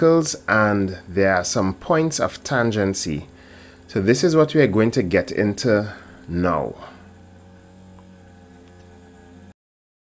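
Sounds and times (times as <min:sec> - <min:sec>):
mains hum: 0:00.0 - 0:09.6.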